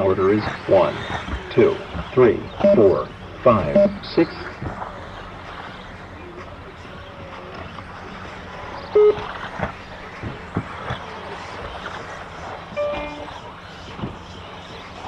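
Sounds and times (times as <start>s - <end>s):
steady background noise: 0.0s - 15.0s
short pitched beeps: 2.6s - 2.9s, 3.7s - 4.1s, 9.0s - 9.2s, 12.8s - 13.3s.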